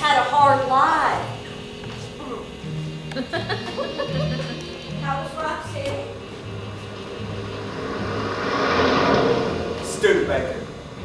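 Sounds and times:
rushing noise: 3.7s - 11.0s.

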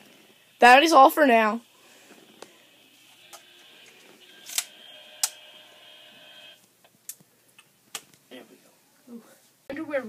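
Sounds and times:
faint high whine: 0.0s - 6.6s
handheld radio clicks: 4.3s - 5.4s.

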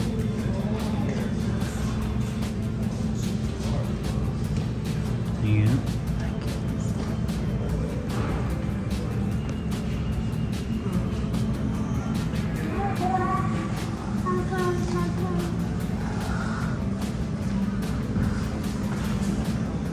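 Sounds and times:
background music: 0.0s - 19.9s
steady low rumble: 0.0s - 19.9s.

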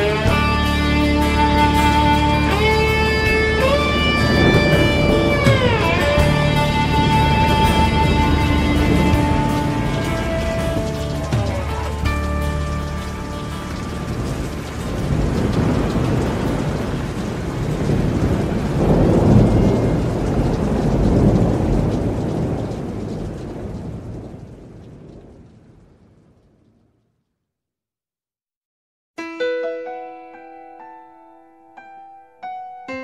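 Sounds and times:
country band notes: 0.0s - 16.1s
rolling thunder: 0.0s - 27.0s
rain: 0.0s - 27.4s.

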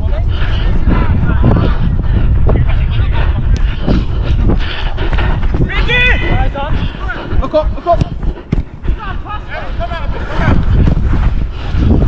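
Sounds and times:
footfalls running: 0.0s - 12.0s
wind buffeting microphone: 0.0s - 12.0s.

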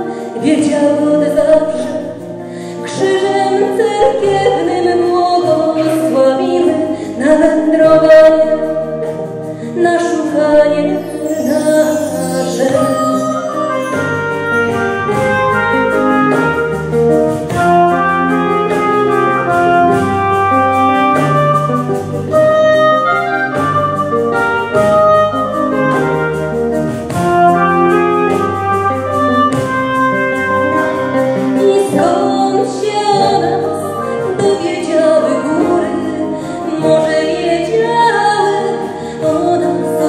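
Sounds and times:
acoustic guitar: 0.0s - 40.0s
bass: 0.0s - 40.0s
drums keeping a steady beat: 0.1s - 37.3s
woodwind solo: 10.5s - 37.7s.

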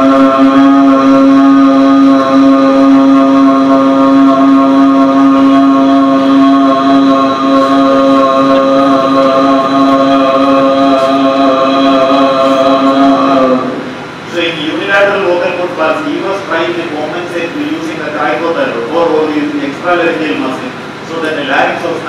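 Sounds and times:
person holding a steady vowel: 0.0s - 14.0s.

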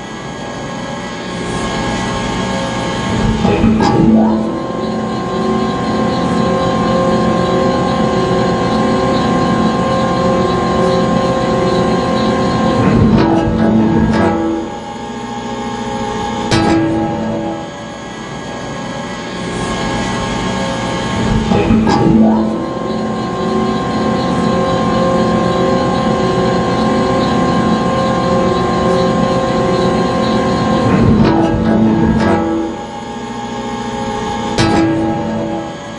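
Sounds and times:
constant whine: 0.0s - 35.9s
conveyor machinery humming: 0.0s - 35.9s.

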